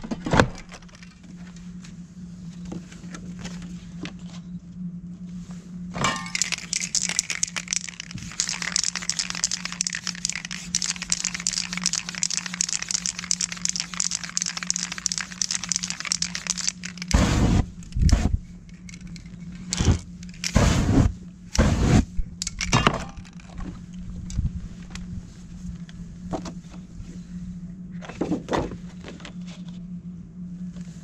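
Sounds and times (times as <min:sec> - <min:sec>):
spray paint can hissing: 0:06.3 - 0:18.3, 0:19.7 - 0:22.0
flames whooshing: 0:17.1 - 0:18.4, 0:20.5 - 0:22.1.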